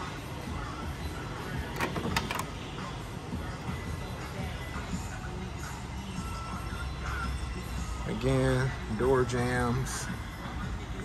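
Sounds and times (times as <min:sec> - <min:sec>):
background music: 0:00.0 - 0:11.0
sharp metallic latch clicks: 0:01.8 - 0:02.5.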